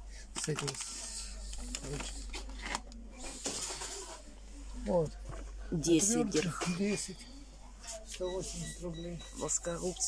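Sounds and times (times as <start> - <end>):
plastic blister packs clicking and rustling: 0.3 - 3.0.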